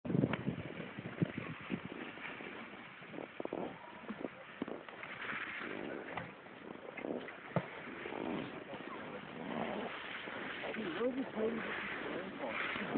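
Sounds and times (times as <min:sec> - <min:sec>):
snowboard scraping over snow: 0:00.1 - 0:12.9.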